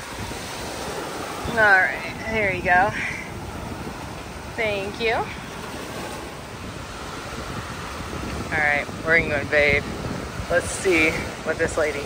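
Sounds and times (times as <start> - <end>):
small waves washing on sand: 0.0 - 12.0
wind on microphone: 0.0 - 12.0.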